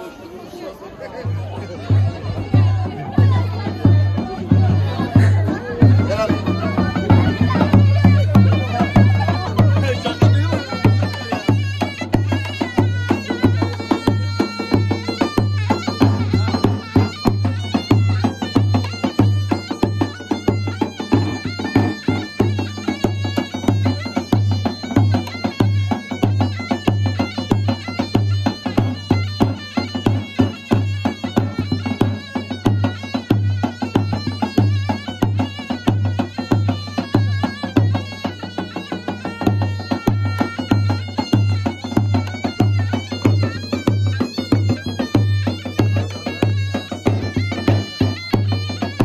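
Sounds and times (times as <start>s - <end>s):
shrill reed-pipe melody: 1.8s - 49.0s.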